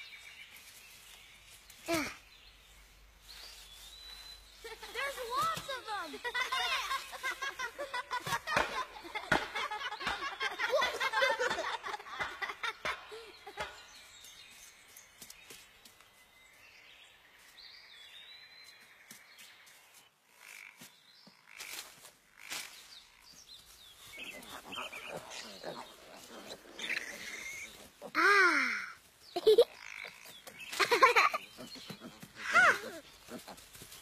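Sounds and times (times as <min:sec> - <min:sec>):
soft rustling: 0:00.2 - 0:08.6, 0:30.4 - 0:34.0
high bird chirp: 0:22.8 - 0:27.8.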